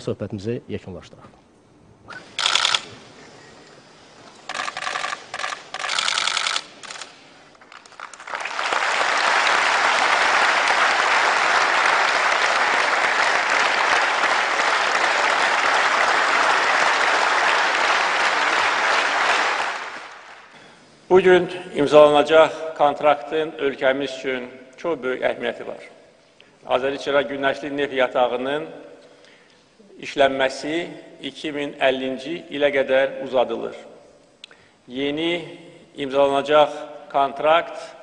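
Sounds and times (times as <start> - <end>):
short sharp bursts: 2.1 - 3.2, 4.5 - 7.5
audience applauding: 7.6 - 20.5.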